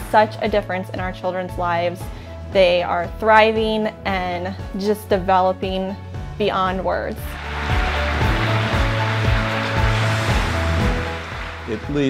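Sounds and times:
instrumental music with low beat: 0:07.3 - 0:12.0.

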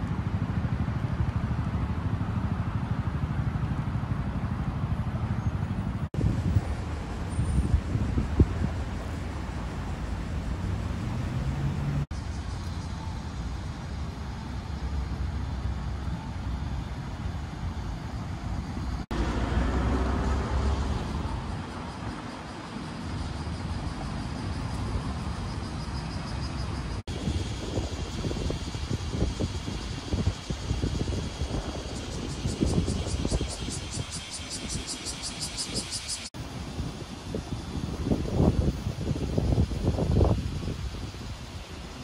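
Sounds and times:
city traffic: 0:00.0 - 0:42.0
vehicle passing: 0:09.8 - 0:12.1, 0:19.1 - 0:21.7.

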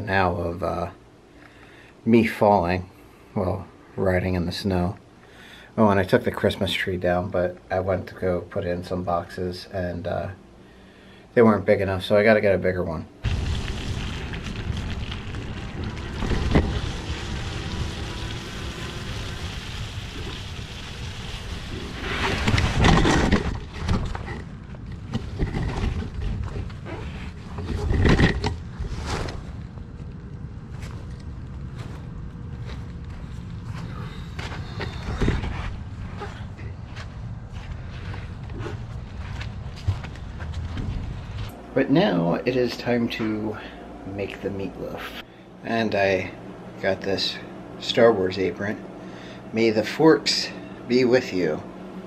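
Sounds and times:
rumble of riding noise: 0:13.2 - 0:41.7.

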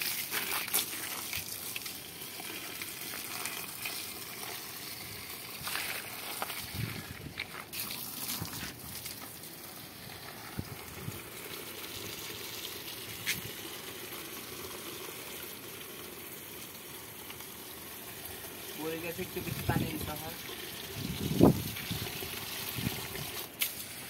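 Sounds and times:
hose water running into soil: 0:00.0 - 0:24.0.

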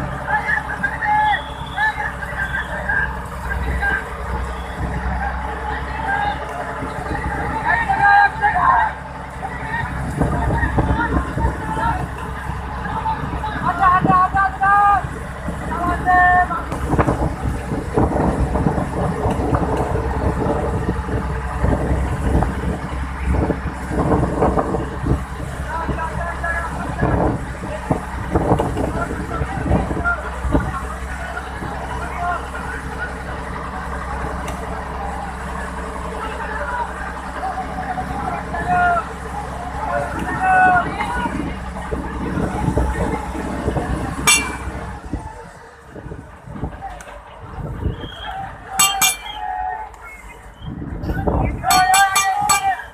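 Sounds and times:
rough sea: 0:00.0 - 0:33.2, 0:33.9 - 0:52.9
boat engine droning: 0:00.0 - 0:52.9
wind: 0:00.0 - 0:52.9.

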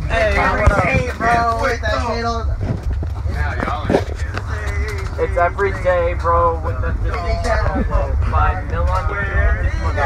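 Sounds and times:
bus rumbling: 0:00.0 - 0:10.0
voices talking: 0:00.0 - 0:10.0.

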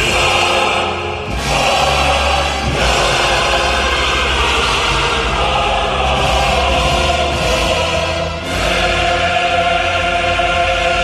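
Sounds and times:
male choir singing chords: 0:00.0 - 0:11.0.

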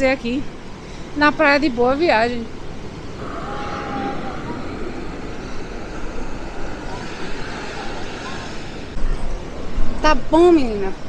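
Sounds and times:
wind: 0:00.0 - 0:11.0
surf washing: 0:02.9 - 0:09.2.

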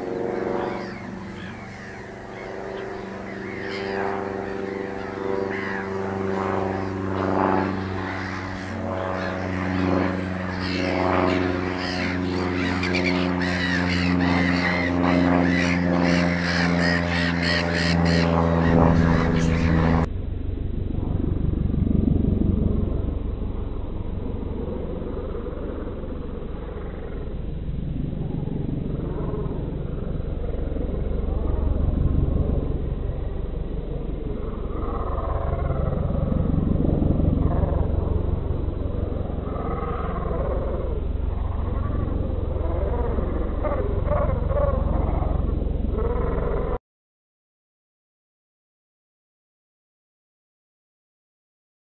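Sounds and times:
steady engine drone: 0:00.0 - 0:46.8
low steady rumble: 0:18.1 - 0:46.8.

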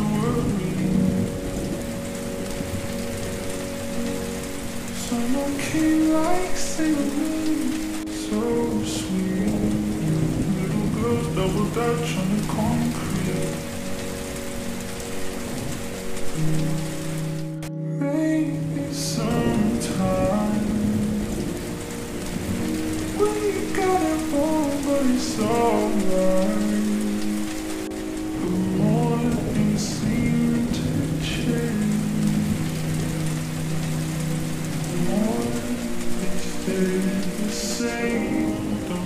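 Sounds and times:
rain pattering: 0:00.0 - 0:39.0
slowed song with reverb: 0:00.0 - 0:39.0.

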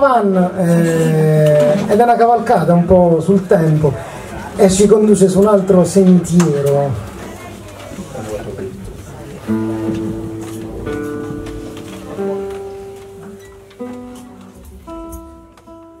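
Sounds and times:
acoustic guitar chords: 0:09.4 - 0:16.0.

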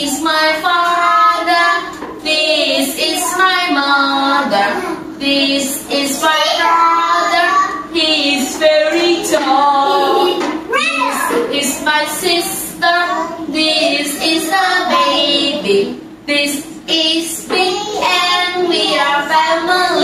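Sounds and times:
woman and children singing: 0:00.0 - 0:20.0.

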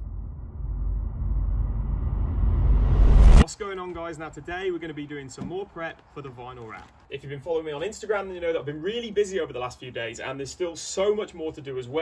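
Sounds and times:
deep rumbling swell with hiss: 0:00.0 - 0:03.4.

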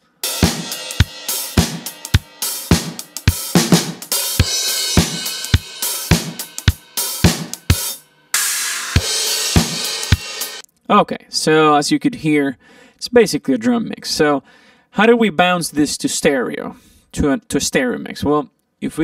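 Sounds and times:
drum kit groove: 0:00.0 - 0:10.6
cymbal wash: 0:00.2 - 0:10.6.

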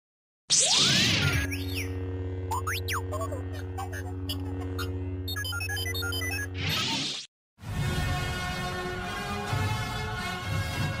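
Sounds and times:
gliding electronic chirps: 0:00.7 - 0:07.0
low electronic hum: 0:01.1 - 0:06.6
held electronic tones: 0:01.4 - 0:06.6.

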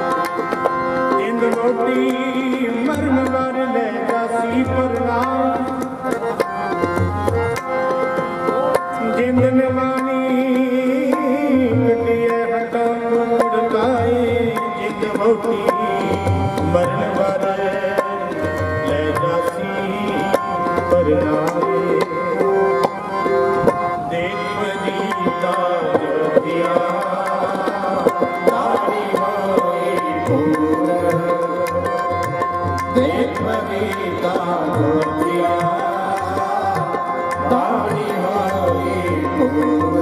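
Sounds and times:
harmoniums playing chords: 0:00.0 - 0:40.0
tabla strokes: 0:00.0 - 0:40.0.

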